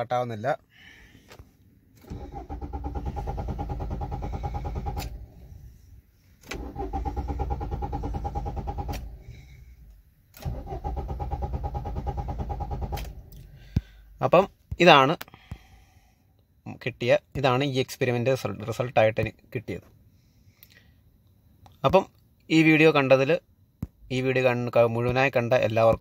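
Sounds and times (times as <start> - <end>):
diesel engine cranking: 2.0 - 14.4.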